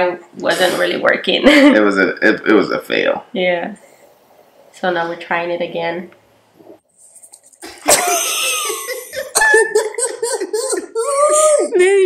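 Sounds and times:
sharp cough-like vocal outburst: 0:00.5 - 0:00.9.

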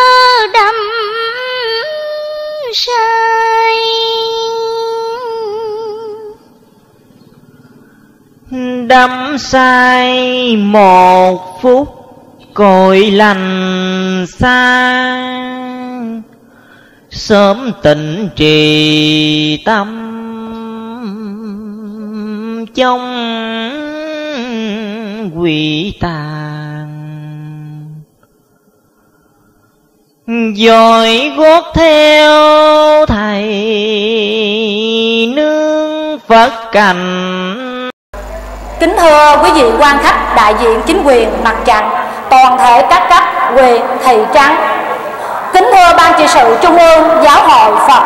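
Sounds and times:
woman chanting with vibrato: 0:00.0 - 0:16.4, 0:17.0 - 0:28.0, 0:30.3 - 0:48.0
person chanting a long note: 0:17.3 - 0:28.0, 0:37.0 - 0:48.0.

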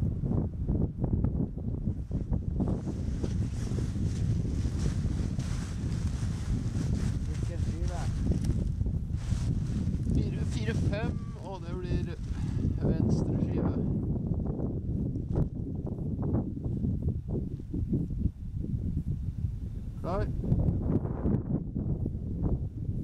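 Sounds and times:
wind on microphone: 0:00.0 - 0:23.0
person speaking: 0:07.3 - 0:08.2, 0:10.2 - 0:12.2.

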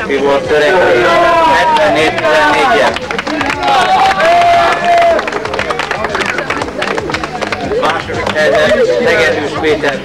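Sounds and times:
voices: 0:00.0 - 0:10.0
crowd clapping: 0:01.1 - 0:10.0.

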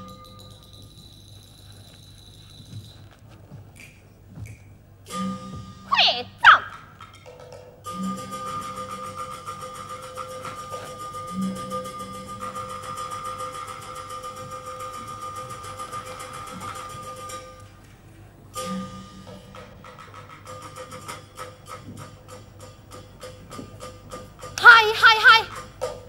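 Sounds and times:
sharp percussion strikes: 0:00.0 - 0:03.0, 0:03.8 - 0:17.7, 0:18.6 - 0:26.0
steady ringing tone: 0:07.9 - 0:17.6.

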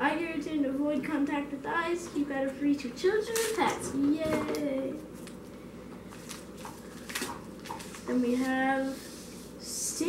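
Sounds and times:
plastic packets crinkling: 0:06.1 - 0:08.1.

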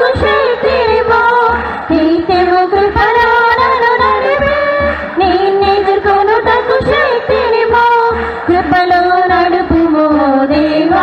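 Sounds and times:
congregation singing: 0:00.0 - 0:11.0.

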